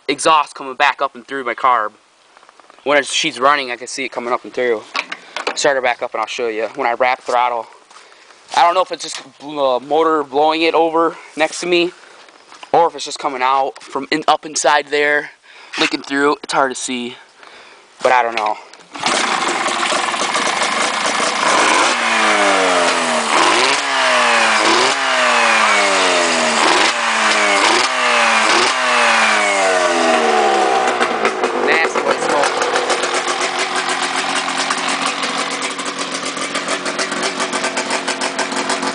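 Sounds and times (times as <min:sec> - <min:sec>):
two-stroke engine revving and idling: 0:18.9 - 0:38.9.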